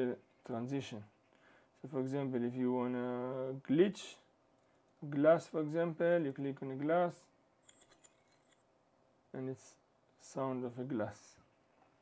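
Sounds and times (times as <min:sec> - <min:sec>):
glassy tinkling: 0:07.7 - 0:08.6.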